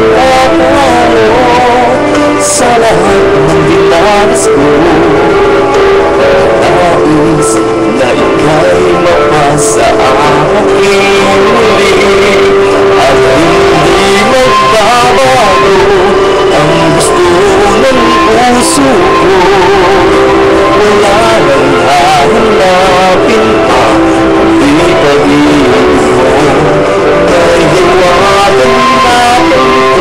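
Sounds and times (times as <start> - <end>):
background music: 0.0 - 30.0
person singing a long note: 0.0 - 30.0.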